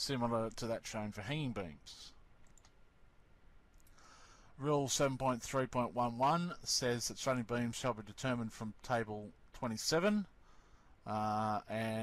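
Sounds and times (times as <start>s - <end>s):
faint computer mouse clicks: 2.4s - 2.8s.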